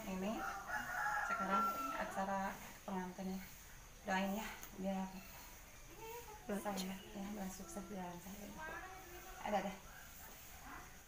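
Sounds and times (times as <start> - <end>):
rooster crowing: 0.0 - 2.6.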